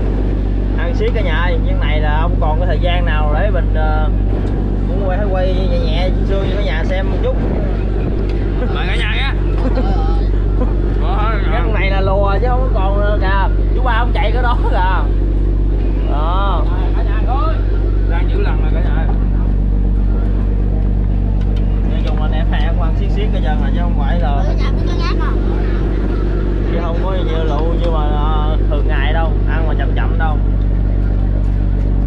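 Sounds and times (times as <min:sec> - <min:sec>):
diesel boat engine humming: 0:00.0 - 0:32.0
voices talking: 0:00.0 - 0:32.0.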